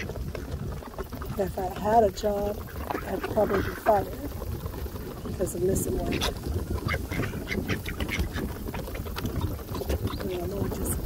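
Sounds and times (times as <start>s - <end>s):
low duck calls: 5.9s - 8.7s.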